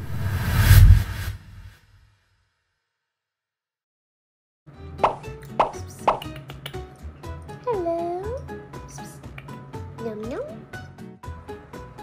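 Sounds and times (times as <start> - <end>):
light background music: 4.7 - 12.0
cartoon pop sound effects: 5.0 - 6.8.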